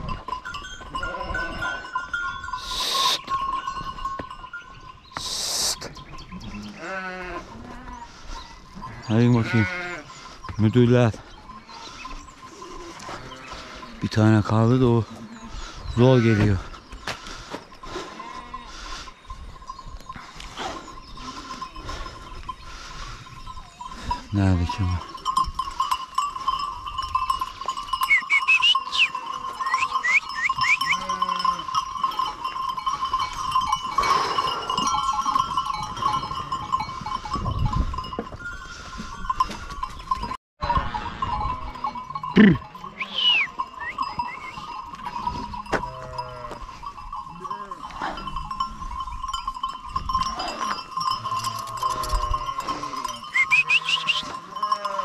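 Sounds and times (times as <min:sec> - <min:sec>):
sheep bleating: 0:06.5 - 0:08.1, 0:08.9 - 0:10.2, 0:45.7 - 0:46.8, 0:51.6 - 0:55.0.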